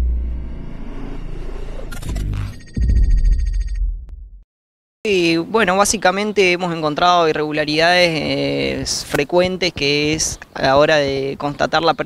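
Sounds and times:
deep bass hit: 0:00.0 - 0:04.4.

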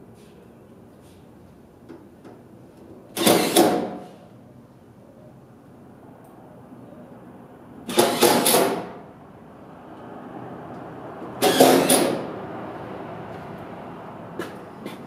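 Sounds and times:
loud bursts of work noise: 0:03.1 - 0:04.3, 0:07.8 - 0:15.0.

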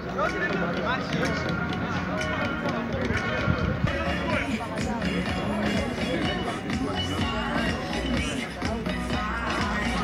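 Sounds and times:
background music: 0:00.0 - 0:10.0
people talking and calling out: 0:00.0 - 0:10.0.

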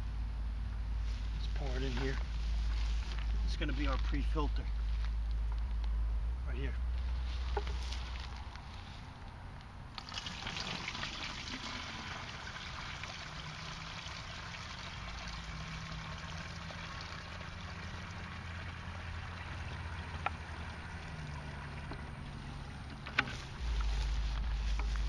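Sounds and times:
water pouring into bucket: 0:10.0 - 0:22.4.

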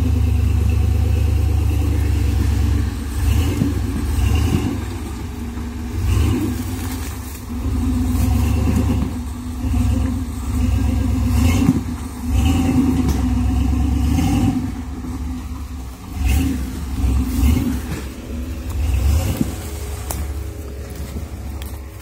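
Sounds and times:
engine revving under load: 0:00.0 - 0:22.0.

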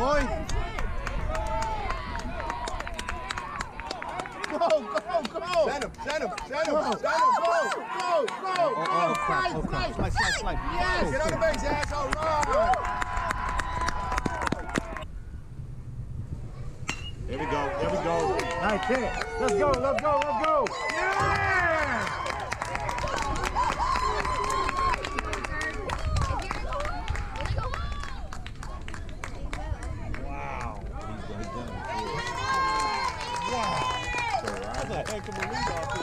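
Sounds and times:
low steady rumble: 0:09.4 - 0:36.0
metal bat hitting ball: 0:16.8 - 0:17.2
people shouting: 0:17.3 - 0:22.5
long drawn-out yell: 0:17.3 - 0:25.3.

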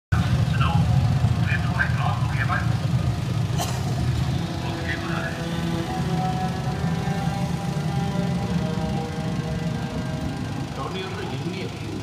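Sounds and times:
heavy low rumble: 0:00.1 - 0:12.0
voice speaking over loudspeakers: 0:00.2 - 0:02.8, 0:04.4 - 0:05.8, 0:10.7 - 0:12.0.

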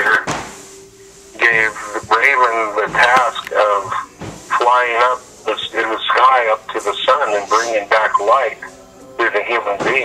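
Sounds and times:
person talking: 0:01.4 - 0:10.0.

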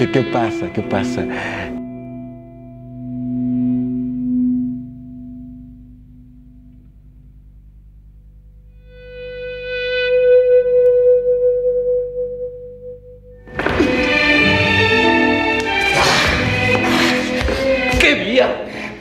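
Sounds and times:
sustained music drone: 0:00.0 - 0:18.0.

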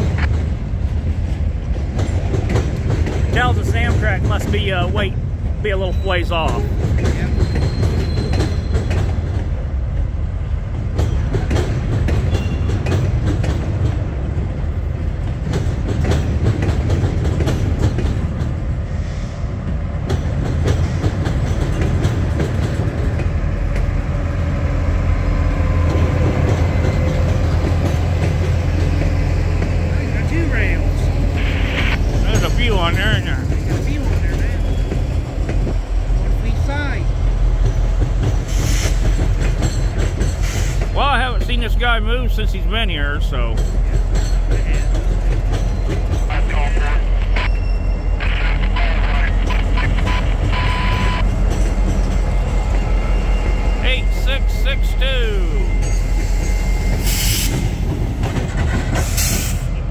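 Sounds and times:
train rumbling past: 0:00.0 - 0:59.9
wheels clicking over rail joints: 0:00.1 - 0:04.9, 0:06.4 - 0:18.8, 0:20.0 - 0:24.4, 0:32.1 - 0:42.2, 0:43.5 - 0:46.9.

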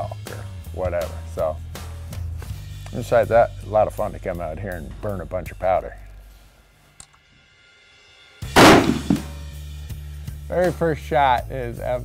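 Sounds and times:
rifle shot with echo: 0:08.6 - 0:09.3.

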